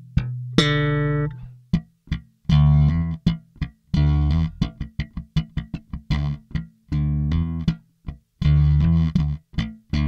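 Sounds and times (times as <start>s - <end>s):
slap bass guitar: 0.0s - 10.0s.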